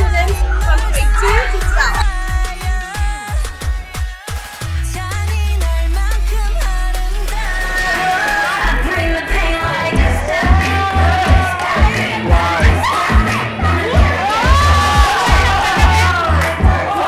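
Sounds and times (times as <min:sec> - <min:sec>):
dance music with heavy bass: 0:00.0 - 0:17.0
children cheering and shouting: 0:00.3 - 0:02.3, 0:07.5 - 0:17.0.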